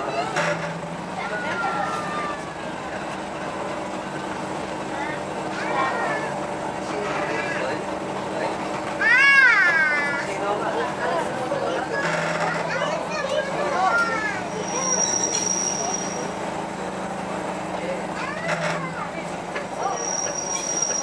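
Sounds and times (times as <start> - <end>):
passengers chattering: 0.0 - 21.0.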